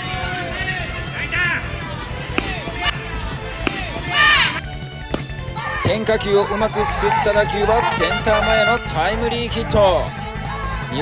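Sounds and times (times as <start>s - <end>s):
background music with beat: 0.0s - 11.0s
bat cracking ball: 2.2s - 6.2s
sharp knocks: 2.4s - 3.0s, 3.6s - 4.2s
person shouting: 4.1s - 4.6s.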